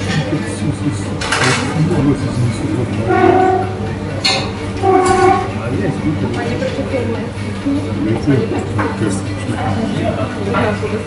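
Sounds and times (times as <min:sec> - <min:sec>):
cafe chatter: 0:00.0 - 0:11.0.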